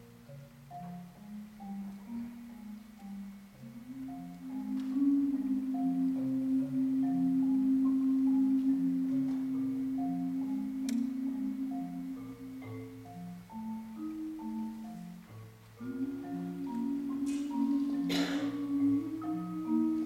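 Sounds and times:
marimbas playing: 0.0 - 20.0.

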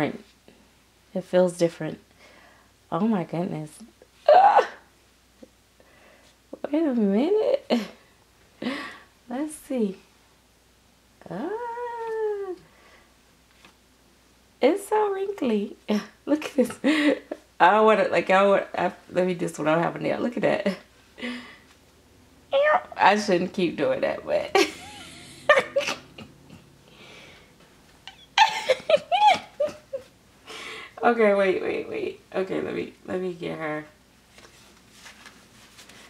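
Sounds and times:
woman laughing softly: 16.6 - 17.5, 24.6 - 26.8, 28.0 - 30.8.

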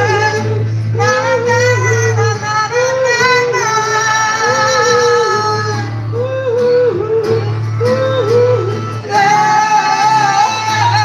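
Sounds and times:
acoustic guitar: 0.0 - 11.0
person singing: 0.0 - 11.0.

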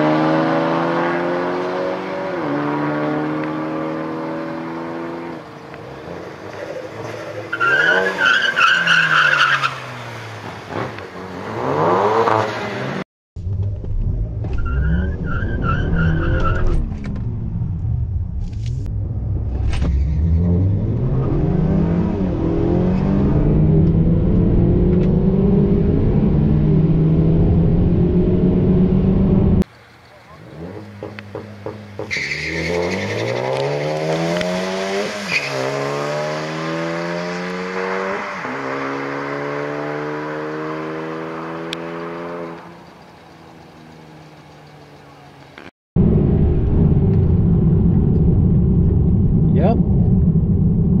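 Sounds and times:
cars accelerating hard: 0.0 - 13.0, 18.8 - 29.6, 30.4 - 45.3
car engine revving inside car: 16.6 - 29.6.

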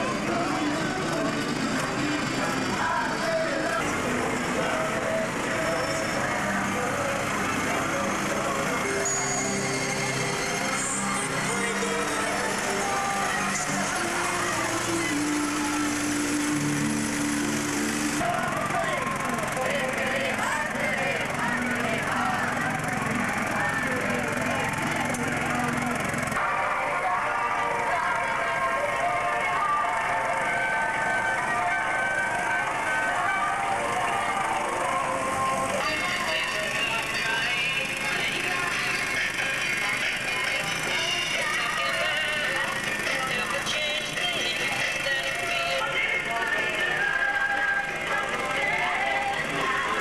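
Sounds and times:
crowd chatter: 0.0 - 50.0
lorry engine running: 0.0 - 50.0
music: 0.0 - 50.0.

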